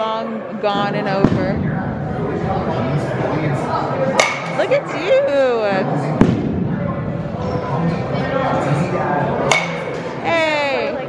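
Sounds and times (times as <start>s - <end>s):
people's voices: 0.0s - 11.0s
baseball bat cracking ball: 4.1s - 4.6s, 9.4s - 10.2s.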